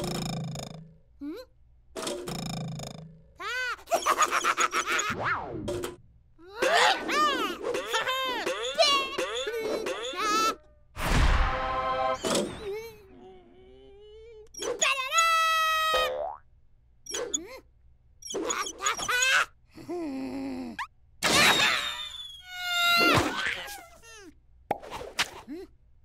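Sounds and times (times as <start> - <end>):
squeaky cartoon vocal sounds: 6.4 - 10.7, 12.2 - 16.2, 17.1 - 19.6, 20.6 - 24.3
cartoon boing effects: 16.0 - 16.4.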